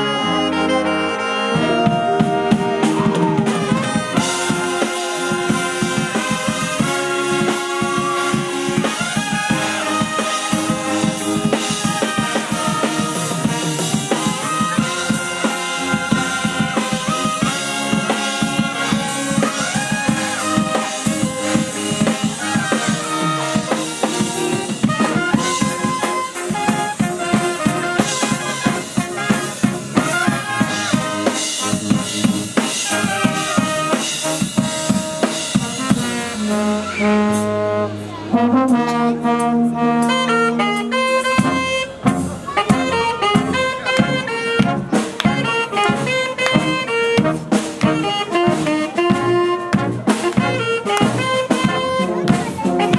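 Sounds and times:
brass band playing: 0:00.0 - 0:52.9
drum kit beat: 0:01.4 - 0:52.9.

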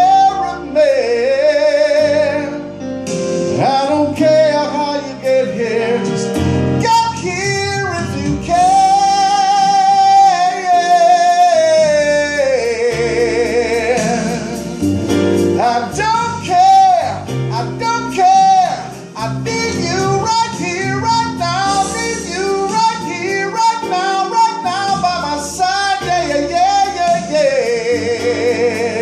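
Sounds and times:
backing music with guitar: 0:00.0 - 0:29.0
man singing a slow ballad: 0:00.0 - 0:29.0.

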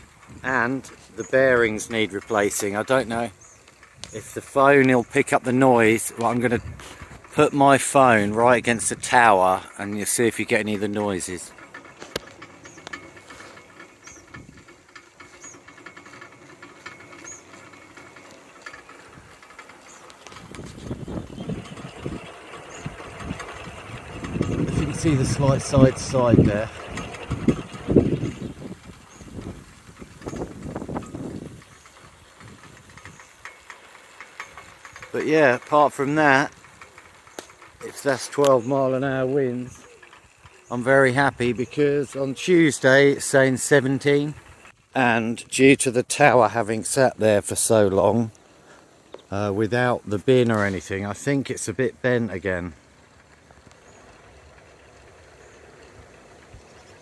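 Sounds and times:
wind buffeting microphone: 0:00.0 - 0:33.6
faint clicks: 0:00.0 - 0:44.9, 0:52.3 - 0:57.0.

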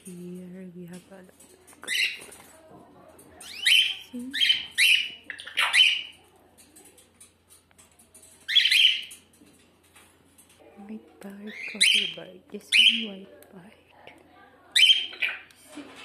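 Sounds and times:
bird chirping harshly: 0:08.5 - 0:09.2.

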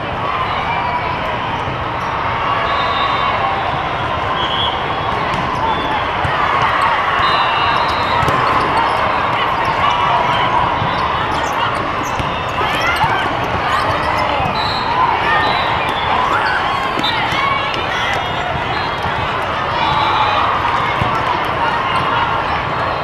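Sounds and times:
many voices in large hall: 0:00.0 - 0:23.0
volleyballs hit and bouncing: 0:05.1 - 0:07.1, 0:07.8 - 0:22.3.

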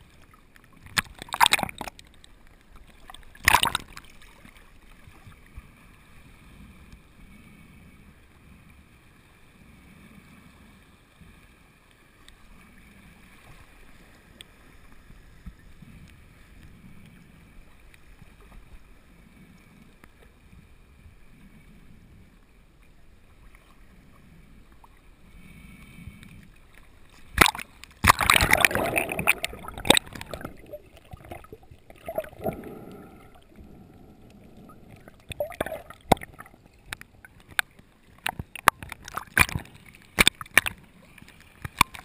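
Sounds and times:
water sloshing and lapping: 0:00.0 - 0:06.2, 0:26.2 - 0:42.0
soft low pulses: 0:29.4 - 0:37.4.

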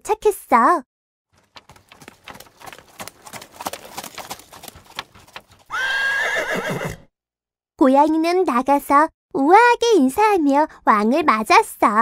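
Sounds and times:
horse hooves clip-clopping: 0:01.3 - 0:06.9.

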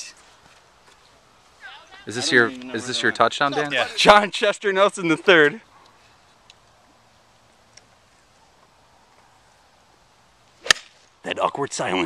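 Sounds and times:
golf club striking ball: 0:10.6 - 0:11.0.

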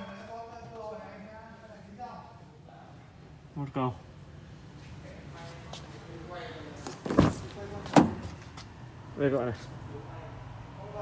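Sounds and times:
truck door thudding shut: 0:07.1 - 0:08.4.

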